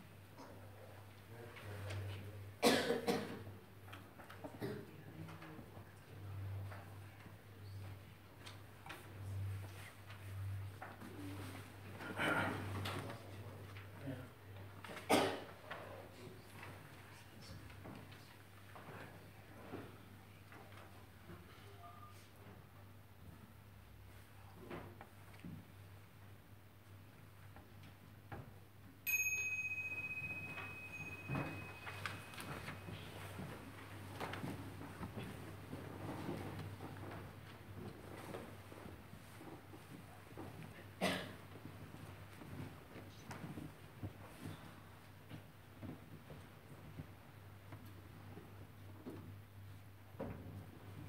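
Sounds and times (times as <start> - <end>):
small bell ringing: 29.0 - 33.2.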